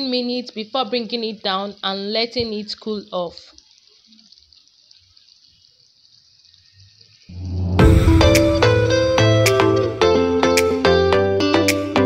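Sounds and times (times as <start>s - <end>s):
food sizzling in frying pan: 0.0s - 11.2s.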